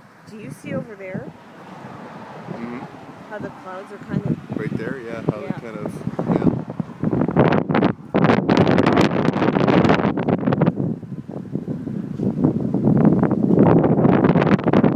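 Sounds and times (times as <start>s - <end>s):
gusty wind buffeting microphone: 0.0s - 14.9s.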